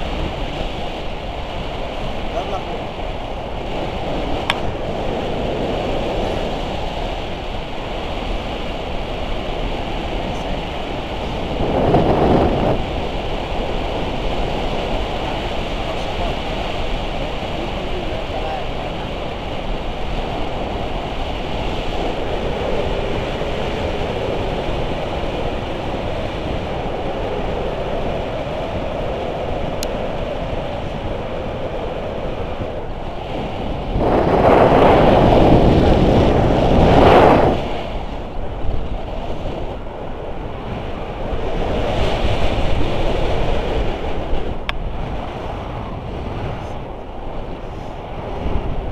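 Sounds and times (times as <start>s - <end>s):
wind buffeting microphone: 0.0s - 48.9s.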